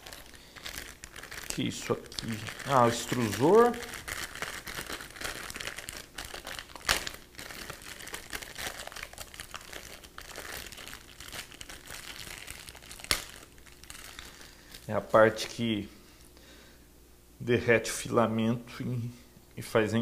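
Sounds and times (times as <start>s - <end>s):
plastic wrapping crinkling: 0.0s - 15.5s.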